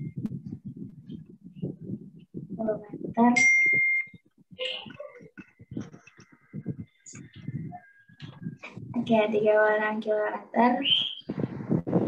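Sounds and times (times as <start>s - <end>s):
high-pitched electronic beep: 3.4s - 4.2s
faint voices: 4.5s - 10.2s.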